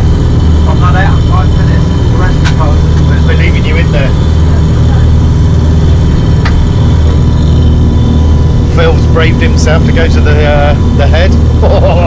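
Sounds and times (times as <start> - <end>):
boat engine low drone: 0.0 - 12.0.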